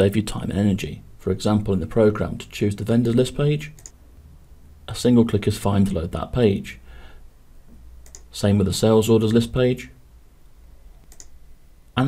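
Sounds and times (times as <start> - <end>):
low steady hum: 0.0 - 12.0
computer mouse click: 3.8 - 4.0, 8.0 - 8.3, 11.0 - 11.4.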